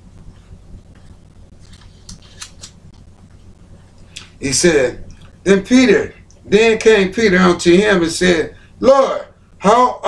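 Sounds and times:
thin pages rustling: 1.0 - 3.0.

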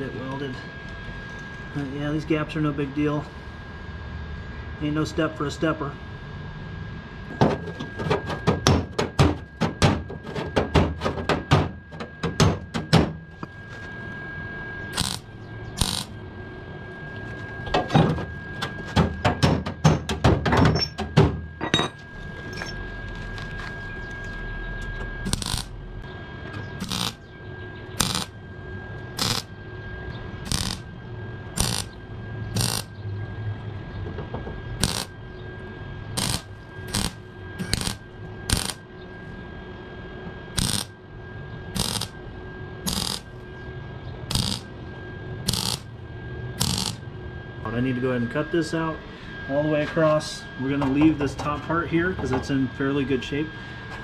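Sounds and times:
mig welding bursts: 14.9 - 16.2, 25.2 - 25.7, 26.8 - 27.2, 28.0 - 28.3, 29.2 - 29.5, 30.5 - 30.9, 31.6 - 32.0, 32.6 - 32.9, 34.8 - 35.1, 36.2 - 38.8, 40.6 - 40.9, 41.8 - 42.2, 42.9 - 43.4, 44.3 - 44.7, 45.4 - 45.9, 46.6 - 47.0.

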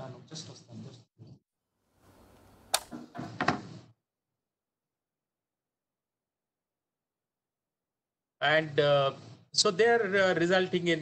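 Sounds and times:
sharp clicks: 2.7 - 3.0.

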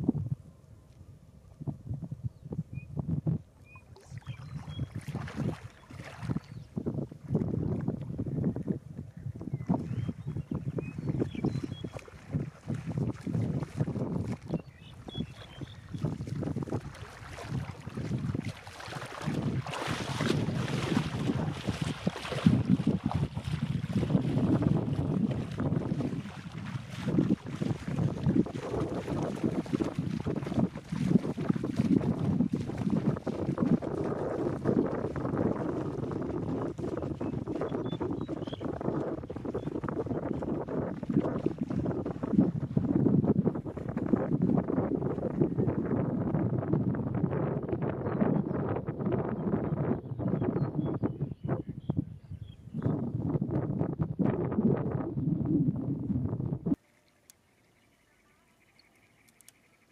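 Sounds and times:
wind gusting across microphone: 0.0 - 56.8.

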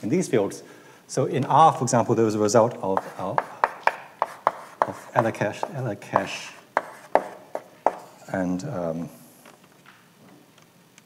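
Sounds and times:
chalk tapping on blackboard: 2.9 - 8.2.

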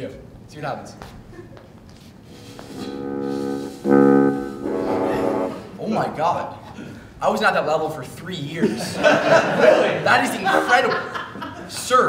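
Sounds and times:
buzzing brass-like drone: 2.2 - 5.8.

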